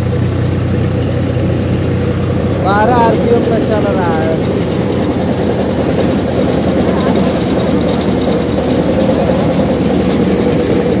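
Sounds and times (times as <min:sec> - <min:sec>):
thresher rattling: 0:00.0 - 0:11.0
tractor engine running: 0:00.0 - 0:11.0.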